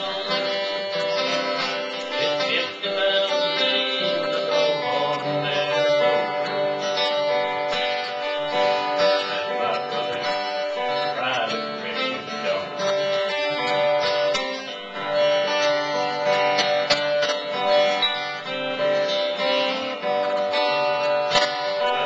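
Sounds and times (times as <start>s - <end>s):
acoustic guitar strumming: 0.0s - 22.0s.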